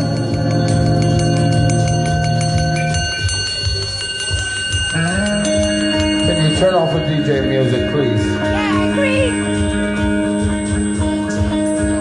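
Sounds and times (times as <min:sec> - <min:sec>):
held band chords: 0:00.0 - 0:12.0.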